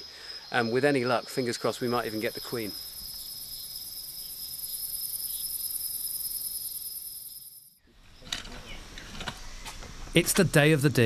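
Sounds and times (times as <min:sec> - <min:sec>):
insects trilling: 0:00.0 - 0:09.6.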